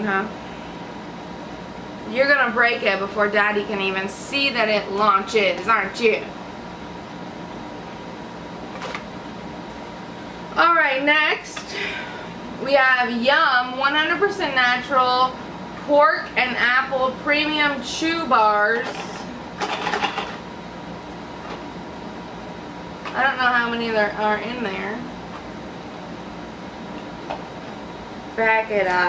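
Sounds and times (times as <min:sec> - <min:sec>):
faint constant hum: 0:00.0 - 0:29.0
room noise: 0:00.0 - 0:29.0.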